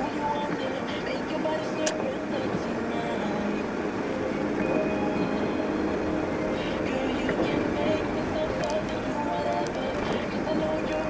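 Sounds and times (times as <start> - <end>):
car tyres and engine rumble: 0.0 - 11.0
music playing: 0.0 - 11.0.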